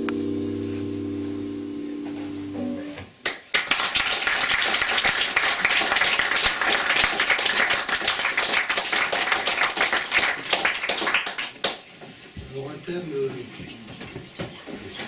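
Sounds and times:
audience applauding: 3.2 - 11.9.

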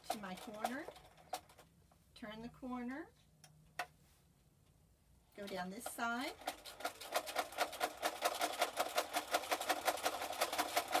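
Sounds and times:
sewing machine running: 5.4 - 11.0.

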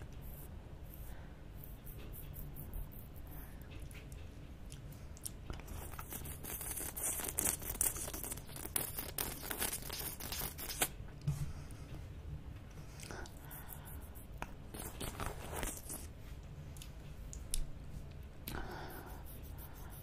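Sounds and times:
wet licking and sucking: 5.2 - 10.9.

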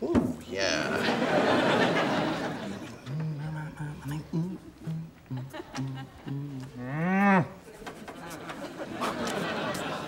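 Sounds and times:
man humming: 0.5 - 1.2, 2.8 - 7.5.

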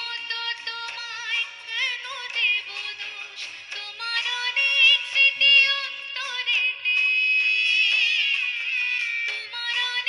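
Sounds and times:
instrumental accompaniment: 0.0 - 10.0
woman singing into microphone: 0.0 - 10.0.

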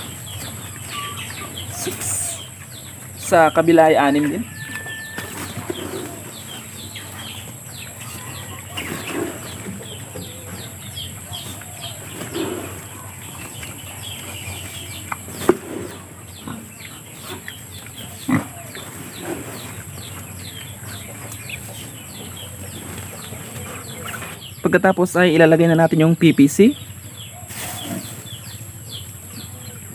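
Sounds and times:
birds chirping: 0.0 - 29.9.

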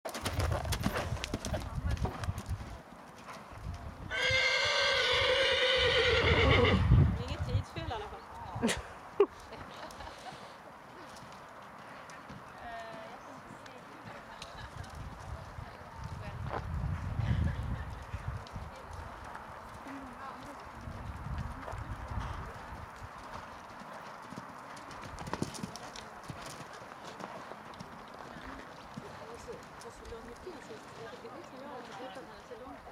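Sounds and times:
hooves thudding on sand: 0.1 - 4.0, 7.2 - 32.8
horse neighing: 4.1 - 6.9.

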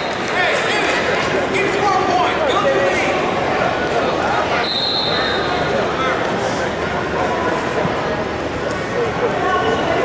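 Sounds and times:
crowd chatter: 0.0 - 10.0
referee whistle blast: 4.6 - 5.4.

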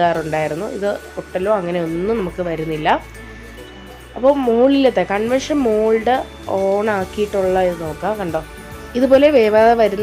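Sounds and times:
person talking: 0.0 - 3.1, 4.2 - 10.0
background music: 0.0 - 10.0.

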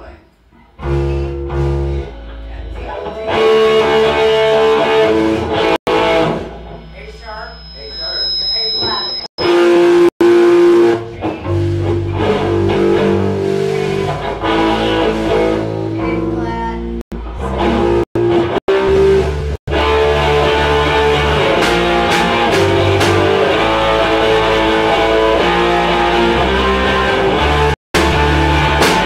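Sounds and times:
guitar playing chords: 0.8 - 6.9, 9.4 - 29.0.

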